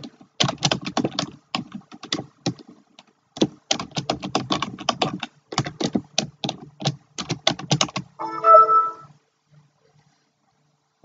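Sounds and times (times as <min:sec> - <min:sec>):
short chiming tone: 0:08.2 - 0:09.1.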